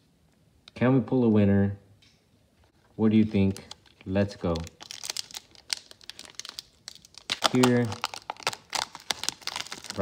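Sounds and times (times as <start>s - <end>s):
foil wrapper crinkling and tearing: 3.2s - 10.0s.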